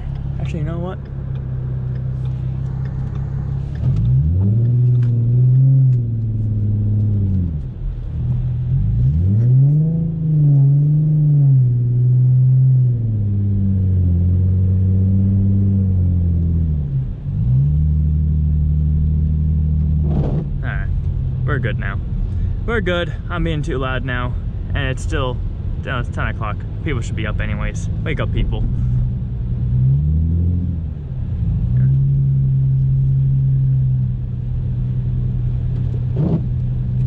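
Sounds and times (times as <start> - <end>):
car engine revving: 0.0 - 37.0.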